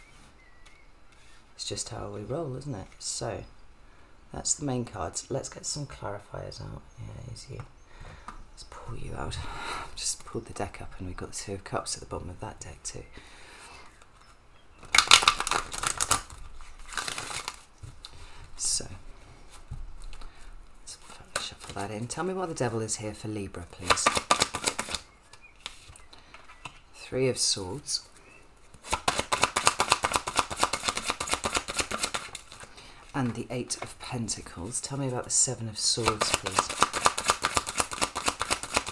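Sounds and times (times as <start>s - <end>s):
cards being shuffled: 14.0s - 18.2s, 21.0s - 22.0s, 23.8s - 26.8s, 28.6s - 34.0s, 36.0s - 38.9s.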